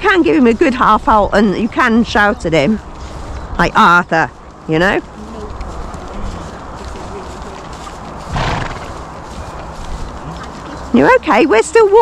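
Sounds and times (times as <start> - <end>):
horses walking on dirt: 0.0 - 12.0
horse snorting: 8.2 - 9.2, 10.2 - 10.9.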